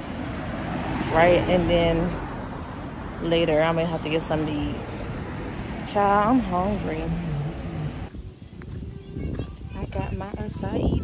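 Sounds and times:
woman's voice drawn-out low sound: 0:05.8 - 0:08.1.

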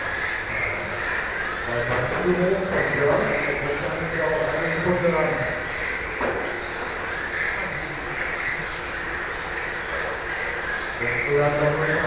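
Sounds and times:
rc cars high-pitched whines: 0:00.0 - 0:12.0.

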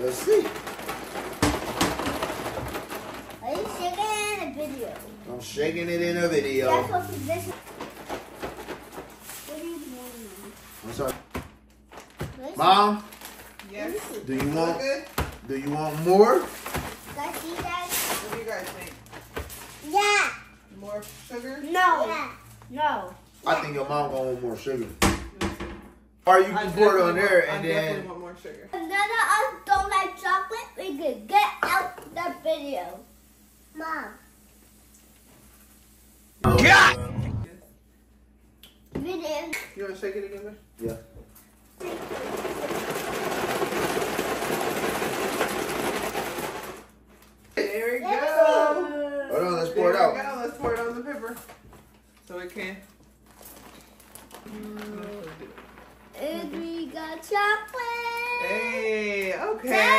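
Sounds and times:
plastic bag crinkling: 0:00.0 - 0:04.0, 0:52.0 - 0:56.9.

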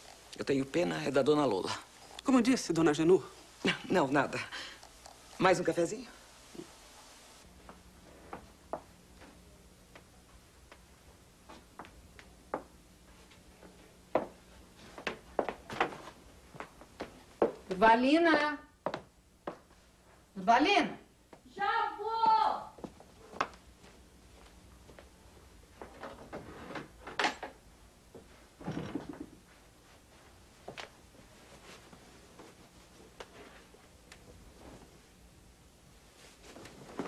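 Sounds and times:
rustling: 0:36.0 - 0:37.0.

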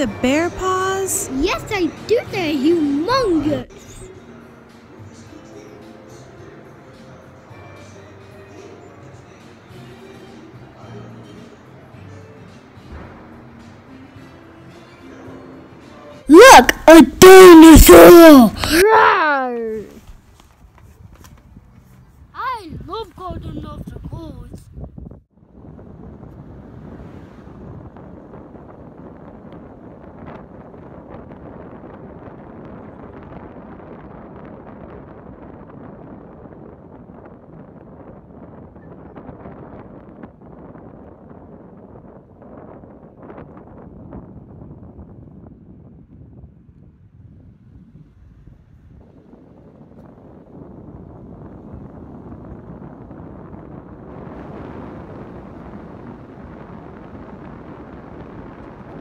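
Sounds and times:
wind buffeting microphone: 0:19.6 - 0:59.0.

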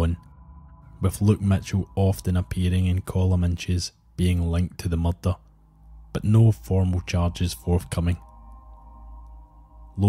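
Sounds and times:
ambient drone music: 0:00.0 - 0:10.0.

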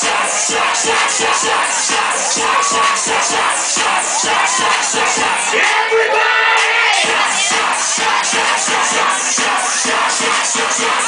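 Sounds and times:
crowd shouting and cheering: 0:00.0 - 0:11.0
party dance music: 0:00.0 - 0:11.0.

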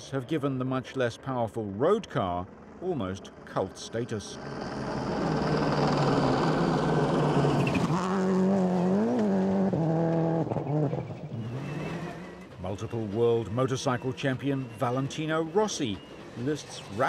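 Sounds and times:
rally car engine running hard: 0:02.5 - 0:17.0.

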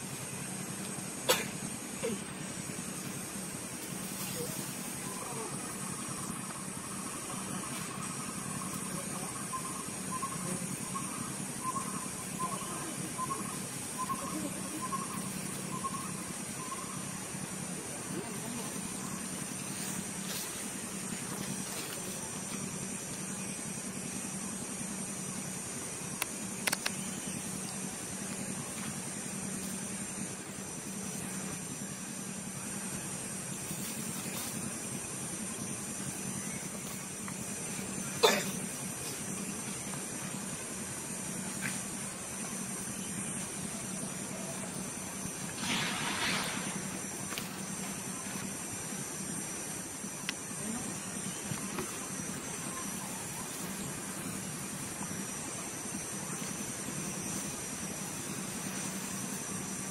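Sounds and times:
outdoor hiss and hum: 0:00.0 - 0:59.9
sharp clicks: 0:26.2 - 0:27.2.

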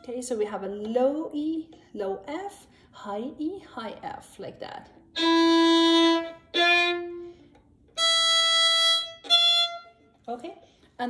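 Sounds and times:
violin bowed notes: 0:05.1 - 0:10.2.

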